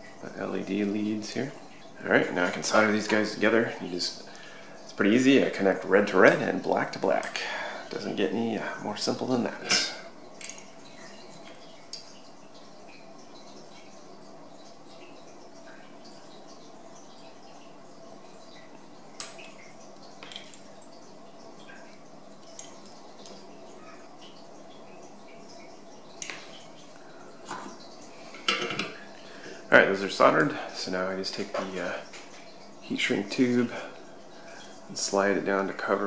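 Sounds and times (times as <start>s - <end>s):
faint steady hum: 0.0s - 36.0s.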